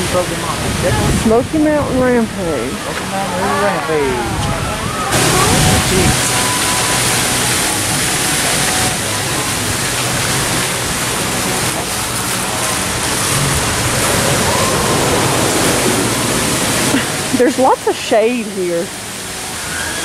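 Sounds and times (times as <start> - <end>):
water rushing: 0.0 - 20.0.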